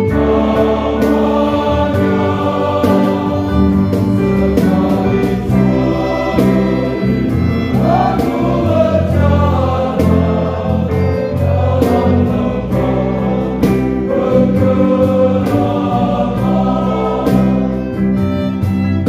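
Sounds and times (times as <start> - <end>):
male choir singing a hymn: 0.0 - 19.0.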